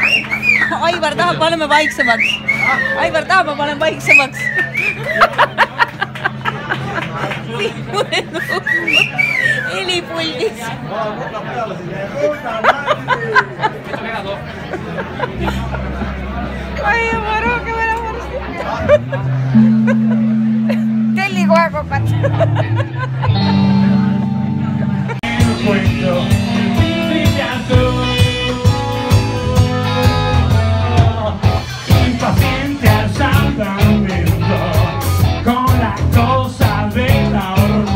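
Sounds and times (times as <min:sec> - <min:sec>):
people talking: 0:05.2 - 0:26.7
live rock band playing: 0:15.5 - 0:37.9
person singing: 0:25.2 - 0:37.9.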